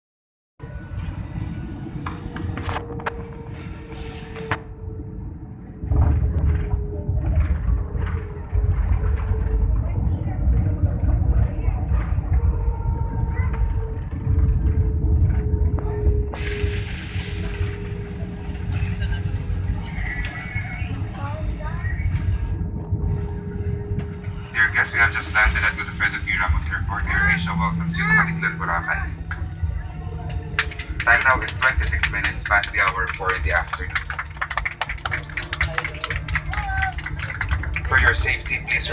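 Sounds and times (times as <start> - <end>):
airliner cabin rumble: 0.6 - 38.9
plane braking on runway: 23.3 - 38.9.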